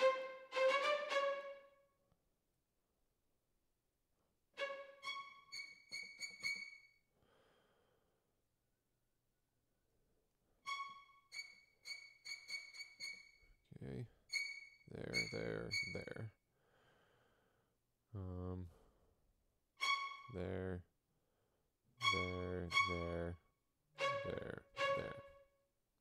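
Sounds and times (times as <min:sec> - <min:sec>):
short high string notes: 0:22.0 - 0:23.3, 0:24.0 - 0:25.4.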